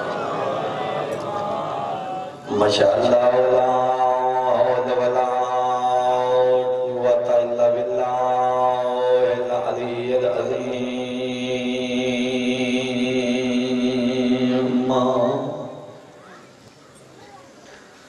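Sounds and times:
man chanting into a microphone: 0:02.4 - 0:16.0.

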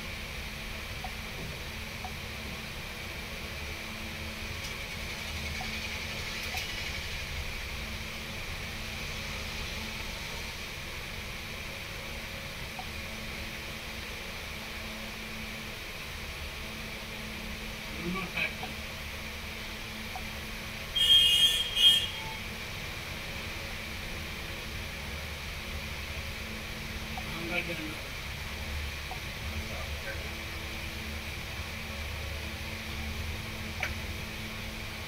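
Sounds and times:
steady hum and hiss: 0:00.0 - 0:35.0.

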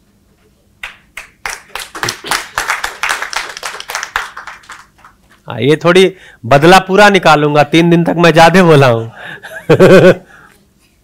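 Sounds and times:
audience applauding: 0:00.8 - 0:05.3.

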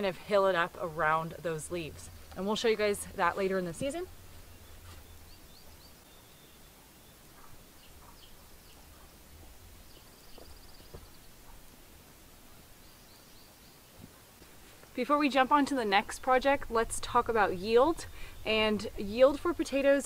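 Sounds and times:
low outdoor rumble: 0:00.0 - 0:06.0, 0:14.9 - 0:20.0
birds chirping: 0:00.0 - 0:14.4, 0:15.1 - 0:20.0.

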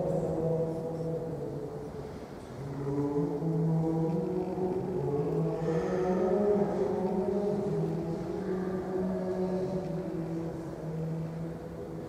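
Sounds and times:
slow sustained church chords: 0:00.0 - 0:12.0.

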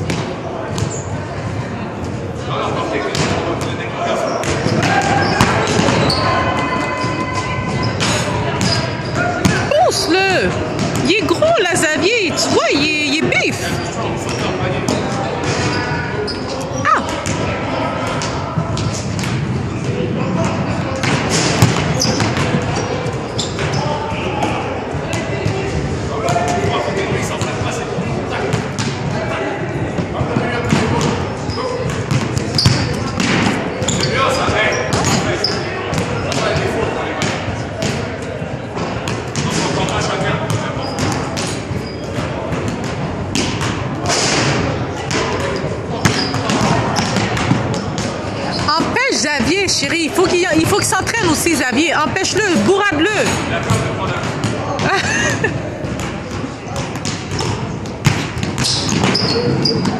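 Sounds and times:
people talking: 0:00.0 - 0:58.0
basketballs bouncing on wooden floor: 0:04.3 - 0:09.8, 0:10.4 - 0:11.6, 0:18.1 - 0:24.5, 0:30.0 - 0:38.1, 0:38.8 - 0:49.6, 0:52.2 - 0:59.9.

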